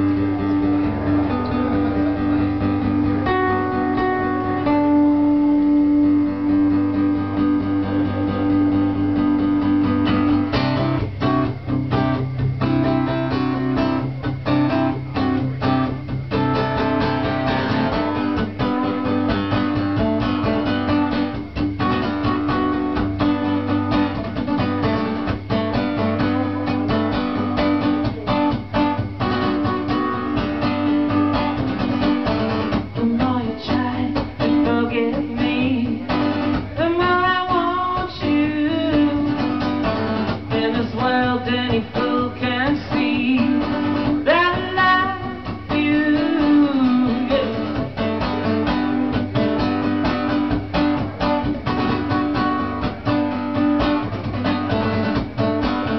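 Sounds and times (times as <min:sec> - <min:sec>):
acoustic guitar strumming: 0:00.0 - 0:55.9.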